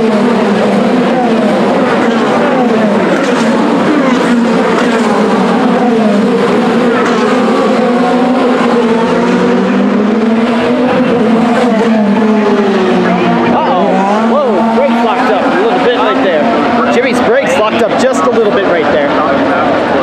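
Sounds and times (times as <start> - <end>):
race car engines passing at speed: 0.0 - 20.0.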